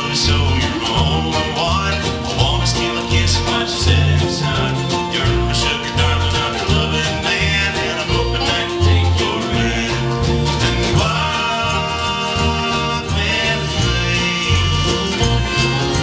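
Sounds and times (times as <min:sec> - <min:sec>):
live country band playing: 0:00.0 - 0:16.0.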